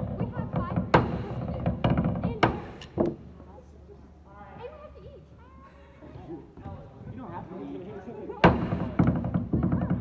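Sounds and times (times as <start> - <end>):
sharp knock: 0.6 - 3.2, 8.4 - 9.4.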